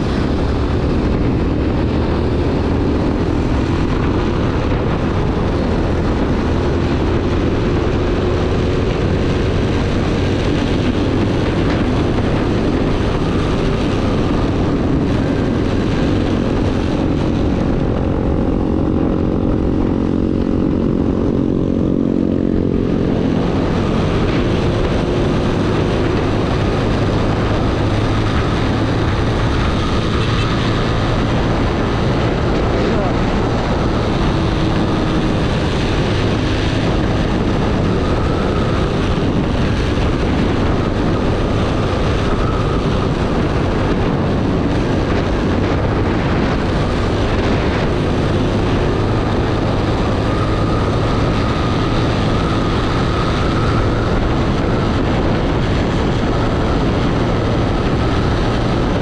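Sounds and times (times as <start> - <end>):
motorcycle engine at high revs: 0.0 - 59.0
wind rush on microphone: 0.0 - 59.0.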